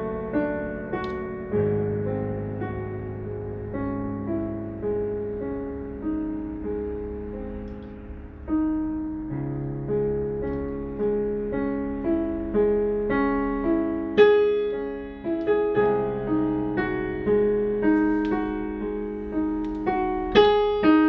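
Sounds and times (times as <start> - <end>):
digital piano playing: 0.0 - 21.0.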